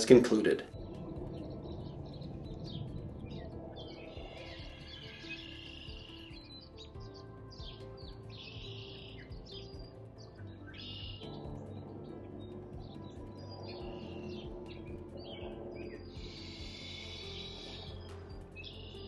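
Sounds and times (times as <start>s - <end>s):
small birds chirping: 0.0s - 19.0s
soft music with held low notes: 0.0s - 19.0s.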